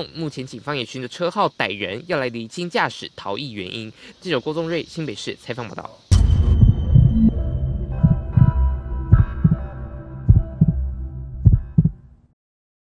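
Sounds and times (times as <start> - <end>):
synthesized jingle music: 6.1 - 11.6
deep thumps: 6.1 - 12.0.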